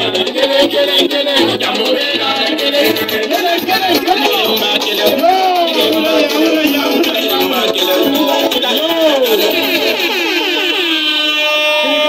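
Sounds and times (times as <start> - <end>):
man singing a long note: 0.0 - 9.7, 10.6 - 12.0.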